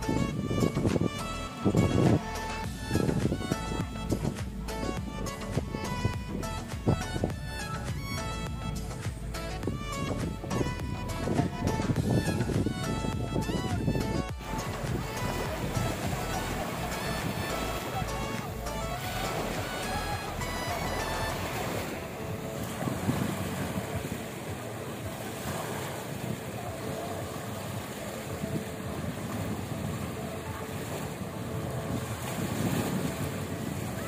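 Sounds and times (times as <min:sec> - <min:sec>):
background music: 0:00.0 - 0:34.0
wind on microphone: 0:00.0 - 0:34.0
small waves breaking on sand: 0:14.9 - 0:34.0.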